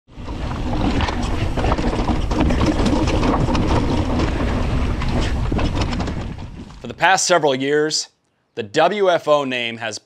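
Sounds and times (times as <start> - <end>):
bike clacking and rattling over rocks: 0.1 - 6.9
wind on microphone: 0.1 - 7.0
bike tyres rumbling on rocky trail: 0.1 - 7.2.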